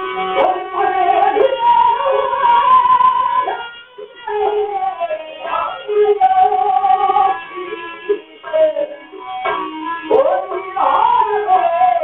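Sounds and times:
string and percussion accompaniment: 0.0s - 12.0s.

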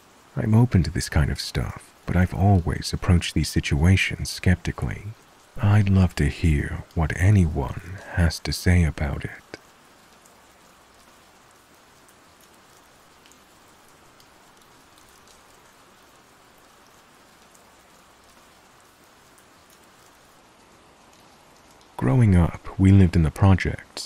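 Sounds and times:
rain drop ticks: 0.0s - 24.0s
rain hiss: 0.0s - 24.0s.

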